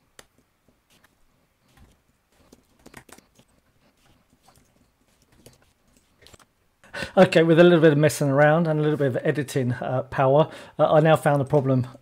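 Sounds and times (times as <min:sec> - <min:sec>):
faint keyboard clicks: 0:01.7 - 0:03.5.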